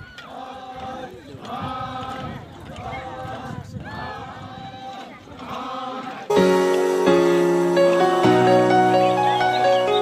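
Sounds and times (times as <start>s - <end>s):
group singing a chant in unison: 0.3s - 3.6s, 5.3s - 6.3s.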